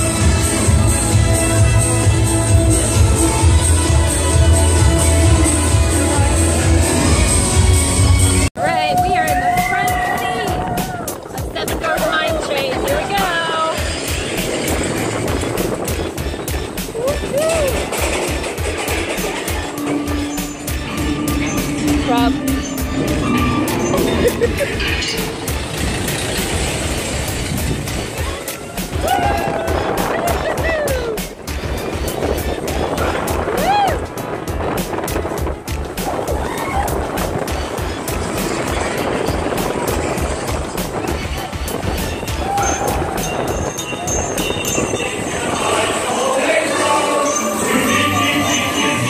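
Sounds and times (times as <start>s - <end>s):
roller coaster wheels clattering on rails: 8.6s - 47.8s
riders whooping: 8.7s - 11.4s, 16.4s - 18.4s, 23.4s - 31.4s, 32.5s - 34.2s, 36.1s - 37.6s, 41.1s - 47.7s.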